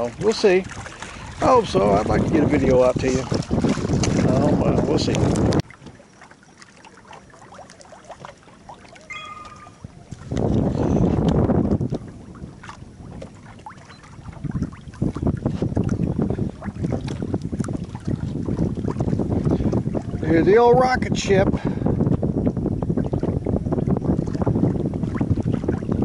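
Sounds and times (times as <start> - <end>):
wind buffeting microphone: 0.0 - 6.0, 7.2 - 26.0
brief high tone: 9.1 - 9.8.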